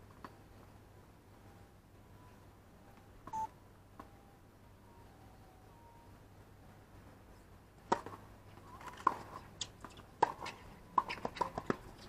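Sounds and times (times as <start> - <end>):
low steady hum: 0.0 - 12.0
short beep: 2.2 - 3.5
tennis ball bouncing on court: 7.9 - 8.2, 9.9 - 11.9.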